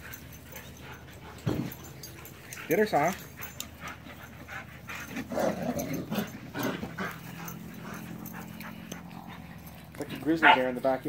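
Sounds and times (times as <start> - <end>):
dogs breathing and scuffling: 0.0 - 11.0.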